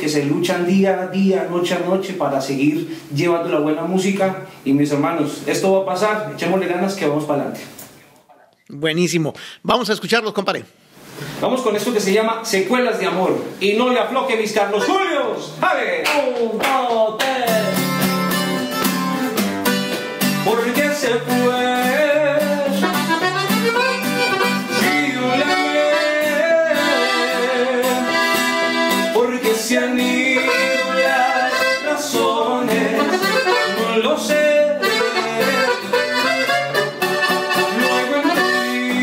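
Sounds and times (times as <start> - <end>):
strummed acoustic guitar: 16.9 - 39.0
button accordion chords: 22.8 - 29.2, 30.1 - 39.0.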